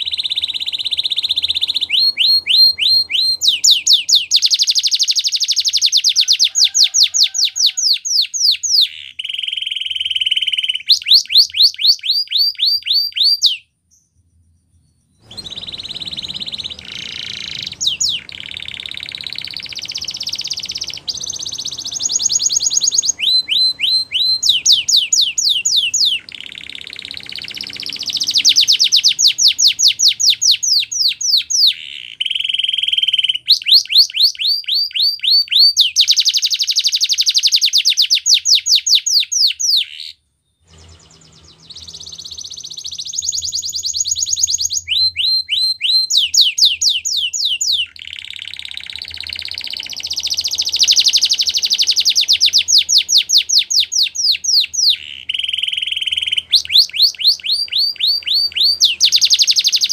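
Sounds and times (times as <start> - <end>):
canary singing: 0.0 - 59.9.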